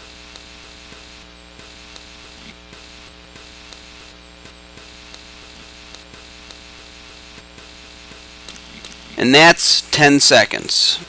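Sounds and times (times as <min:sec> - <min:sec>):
electrical mains hum: 0:00.0 - 0:11.0
faint static hiss: 0:00.0 - 0:11.0
faint ticks: 0:00.2 - 0:01.2, 0:01.9 - 0:05.3, 0:05.9 - 0:06.6.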